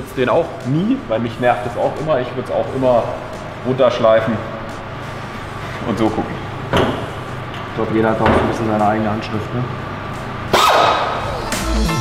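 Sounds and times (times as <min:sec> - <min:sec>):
background music with heavy bass: 0:00.4 - 0:05.7, 0:09.9 - 0:12.0.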